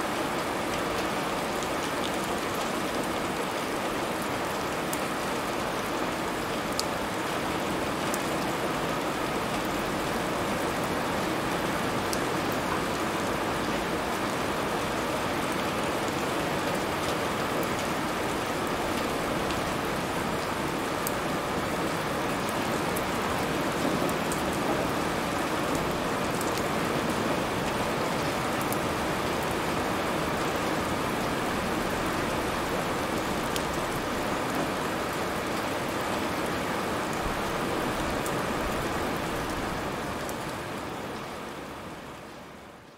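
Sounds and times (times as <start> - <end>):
rain falling: 0.0 - 42.9.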